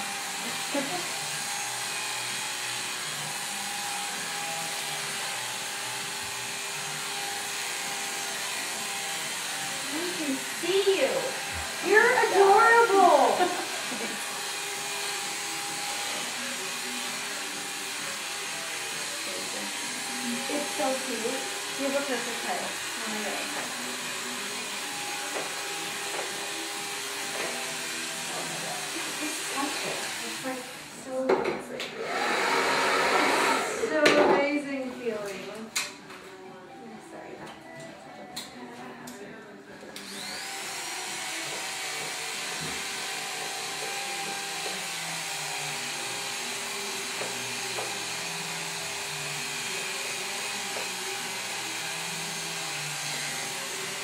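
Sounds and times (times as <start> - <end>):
electric hair clipper cutting hair: 0.0 - 34.7, 39.9 - 54.0
person's voice: 9.9 - 13.6.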